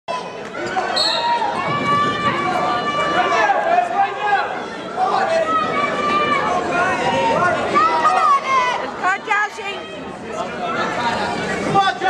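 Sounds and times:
spectators talking and calling out: 0:00.1 - 0:12.0.

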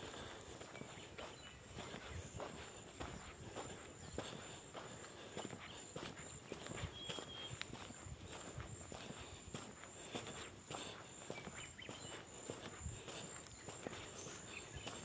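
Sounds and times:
faint footsteps on dirt road: 0:00.0 - 0:15.0.

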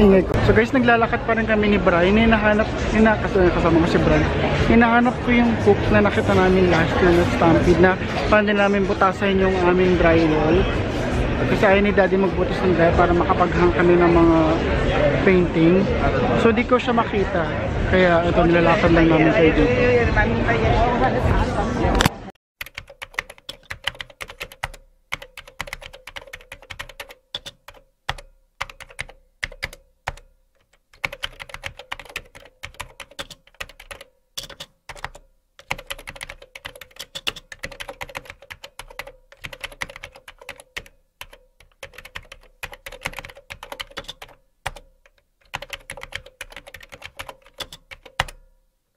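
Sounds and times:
keyboard key clicks: 0:22.0 - 0:48.4.

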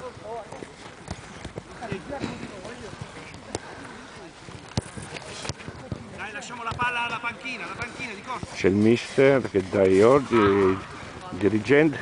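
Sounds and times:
footballs being kicked: 0:00.0 - 0:08.6.

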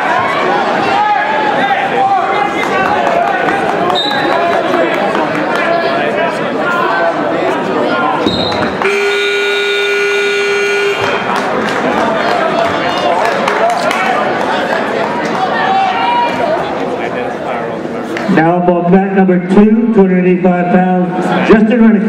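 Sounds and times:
crowd chatter in a gym: 0:00.0 - 0:22.0
scoreboard buzzer: 0:08.8 - 0:11.3.

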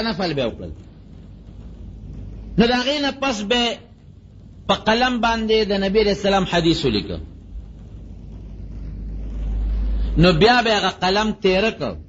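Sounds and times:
low rumble: 0:00.0 - 0:12.0.

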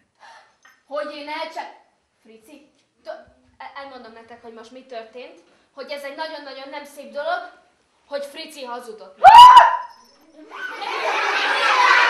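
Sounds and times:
woman speaking: 0:00.9 - 0:09.2.

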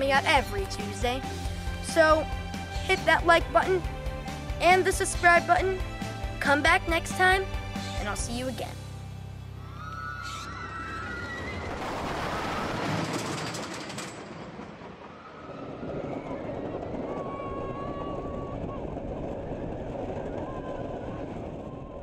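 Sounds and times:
roller coaster running on track: 0:09.8 - 0:22.0.

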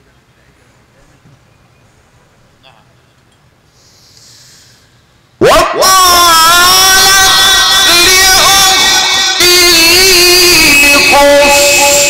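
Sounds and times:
man reciting melodically: 0:05.4 - 0:12.0.

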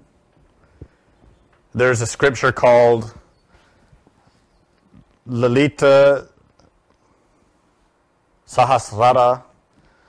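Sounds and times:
man speaking: 0:01.7 - 0:03.3, 0:05.2 - 0:06.4, 0:08.5 - 0:09.5.

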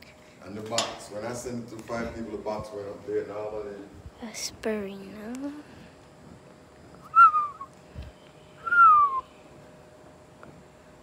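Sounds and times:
person whistling descending notes: 0:07.1 - 0:07.7, 0:08.6 - 0:09.2.

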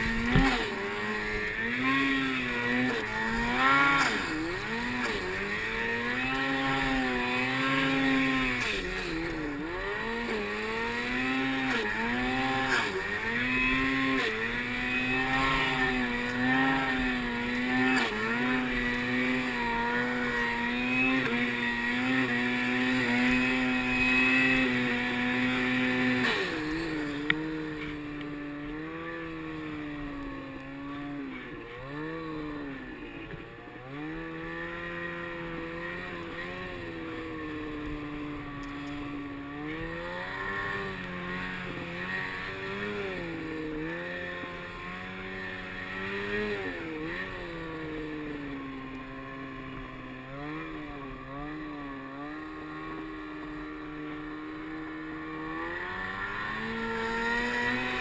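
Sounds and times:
snowmobile engine revving: 0:00.0 - 0:58.0.

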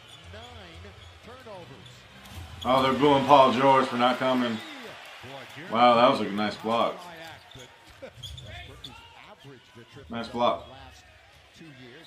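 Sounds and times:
arena crowd noise: 0:00.0 - 0:12.0
commentator's voice: 0:02.6 - 0:04.7, 0:05.4 - 0:07.5, 0:09.3 - 0:10.8
crowd booing: 0:02.6 - 0:06.9.

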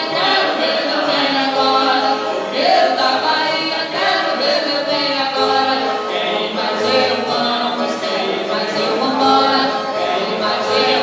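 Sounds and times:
guitar accompaniment: 0:00.0 - 0:11.0
voices singing long held notes: 0:00.0 - 0:11.0.

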